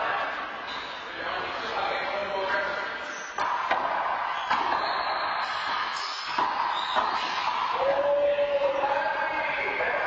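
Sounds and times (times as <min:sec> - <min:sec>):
voices in enclosed court: 0:00.0 - 0:10.0.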